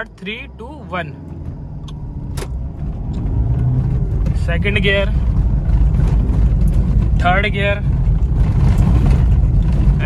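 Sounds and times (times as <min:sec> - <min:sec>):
diesel engine accelerating: 0:00.0 - 0:10.0.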